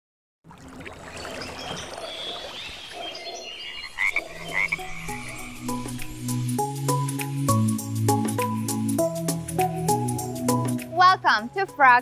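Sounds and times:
frogs chirping in chorus: 1.2s - 6.3s
music: 4.8s - 12.0s.

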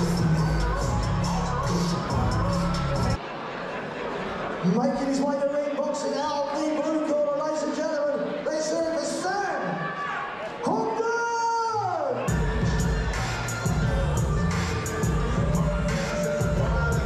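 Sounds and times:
entrance music with heavy bass beat: 0.0s - 3.2s, 12.3s - 17.0s
announcer's amplified voice: 4.6s - 9.9s, 10.6s - 12.8s.

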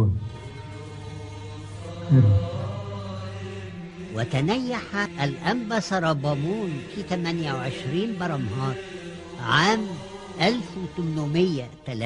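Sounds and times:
low chanted drone music: 0.0s - 12.0s.

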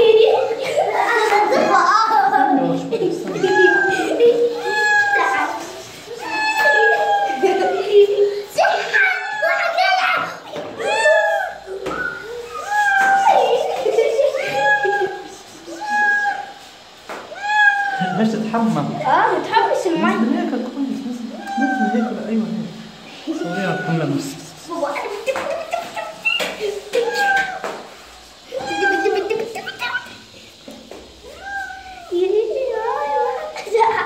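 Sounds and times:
cat meowing: 6.2s - 7.6s, 15.8s - 16.6s, 17.3s - 18.2s, 21.4s - 22.2s, 28.5s - 29.3s, 31.2s - 32.1s.

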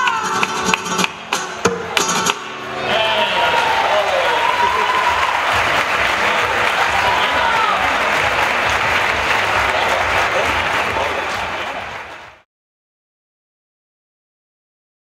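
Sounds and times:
audience applauding: 2.0s - 12.5s
voices calling out: 2.7s - 8.2s.

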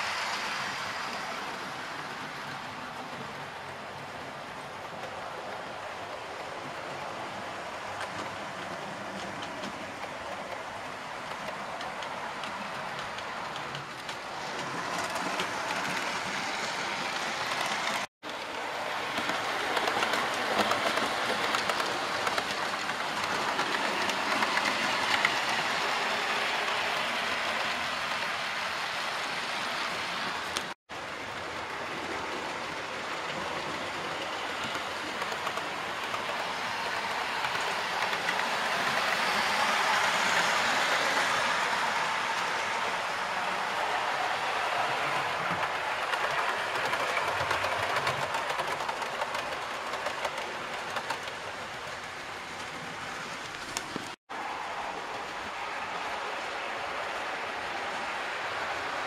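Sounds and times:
model train wheels clattering: 7.9s - 27.8s, 30.4s - 43.0s, 44.9s - 54.2s.

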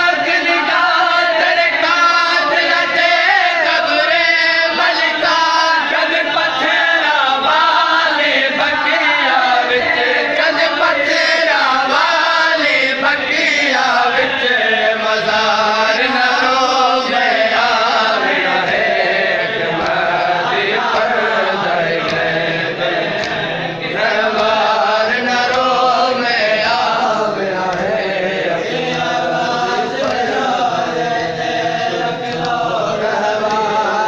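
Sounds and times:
men chanting in unison: 0.0s - 34.0s.

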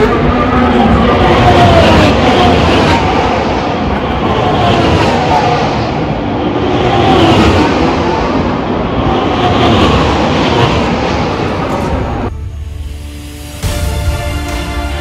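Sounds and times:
racing cars passing at speed: 0.0s - 12.3s.

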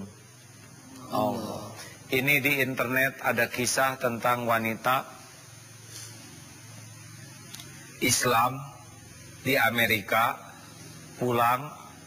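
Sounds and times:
electrical mains hum: 0.0s - 12.0s
faint hiss: 0.0s - 12.0s
small click: 7.5s - 7.7s.

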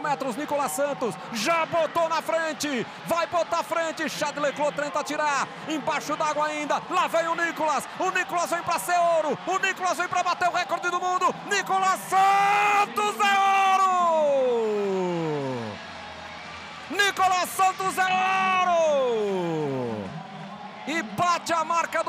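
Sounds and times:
man speaking excitedly: 0.0s - 15.8s, 16.9s - 20.0s.

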